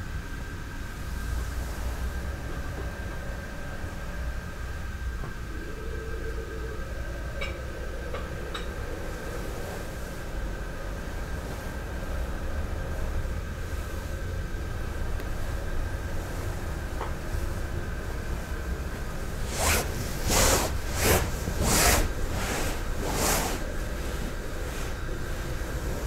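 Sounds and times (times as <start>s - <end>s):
low room hum: 0.0s - 26.0s
fabric rustling: 19.4s - 25.0s.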